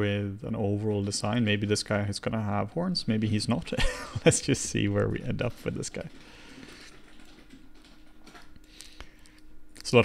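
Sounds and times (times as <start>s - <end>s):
faint steady hum: 0.0s - 10.0s
computer keyboard clicks: 6.9s - 8.9s.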